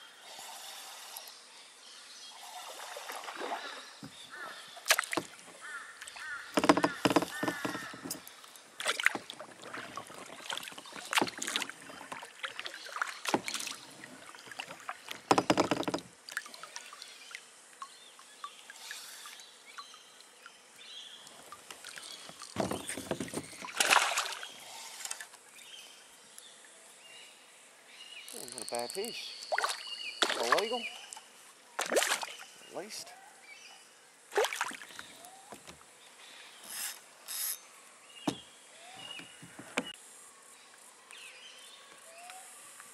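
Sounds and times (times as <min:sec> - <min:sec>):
water splashing around a kayak: 0:02.4 - 0:19.5, 0:20.4 - 0:25.3, 0:28.4 - 0:33.0, 0:34.3 - 0:35.9.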